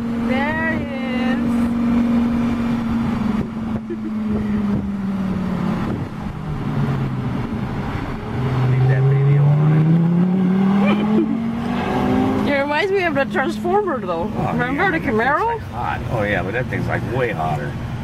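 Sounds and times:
sports car engine accelerating: 0.0 - 18.0.

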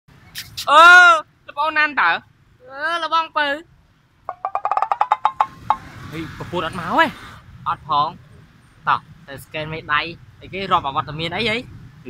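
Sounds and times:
pitched wood-block knocks: 4.3 - 5.9.

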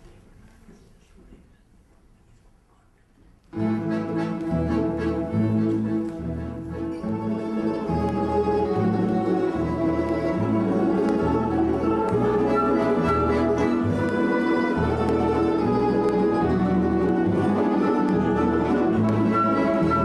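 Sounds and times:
folk orchestra playing a waltz: 3.6 - 20.0.

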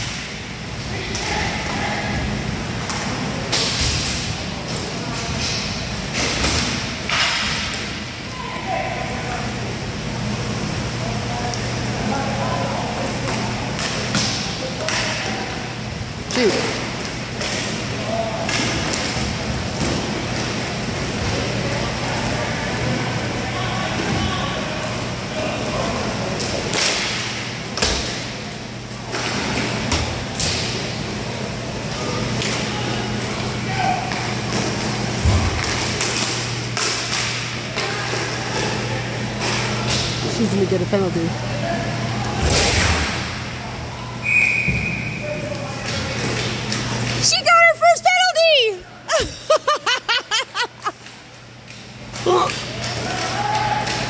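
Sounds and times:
hockey sticks and puck hitting: 26.6 - 28.3, 34.1 - 38.8.

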